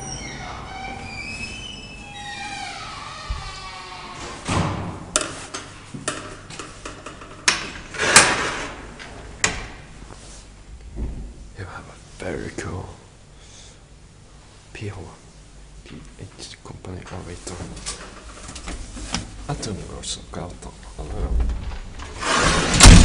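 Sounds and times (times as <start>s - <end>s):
elevator doors clunking: 0.0s - 3.4s.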